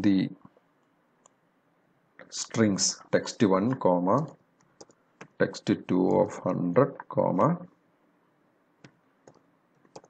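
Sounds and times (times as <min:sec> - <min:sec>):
keyboard keystroke clicks: 0:08.8 - 0:10.0.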